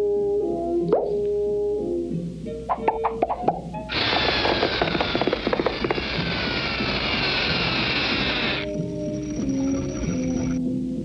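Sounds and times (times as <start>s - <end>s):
cartoon soundtrack music: 2.6s - 3.9s
rattling hissing falling tones: 2.8s - 10.6s
sharp knocks: 3.2s - 6.4s.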